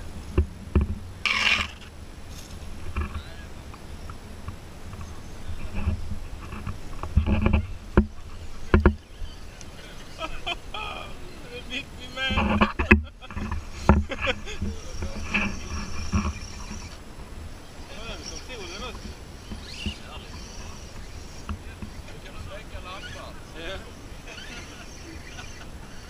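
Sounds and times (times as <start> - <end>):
outdoor background noise: 0.0 - 26.0
indistinct voices: 7.4 - 17.0, 17.8 - 26.0.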